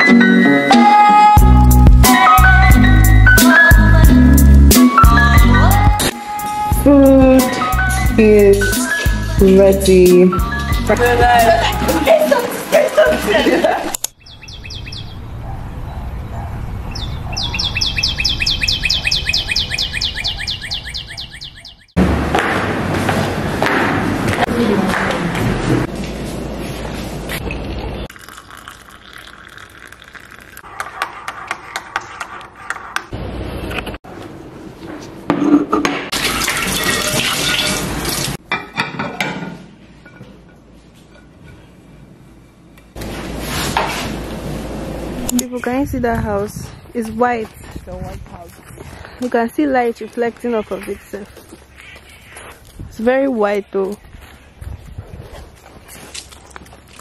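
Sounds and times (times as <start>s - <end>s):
bird trilling chirps: 14.2s - 16.0s, 16.9s - 22.0s.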